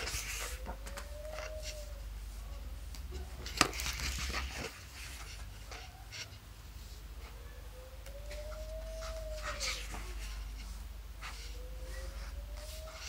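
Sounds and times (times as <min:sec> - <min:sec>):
paper pages turning: 0:00.0 - 0:01.9, 0:02.9 - 0:05.9
animal whining calls: 0:00.0 - 0:03.4, 0:07.2 - 0:13.0.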